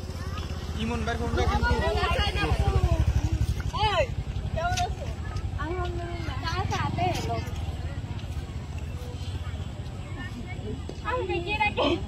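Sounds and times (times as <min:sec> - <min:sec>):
engine running with pulsing throb: 0:00.0 - 0:08.4
voices: 0:00.0 - 0:12.0.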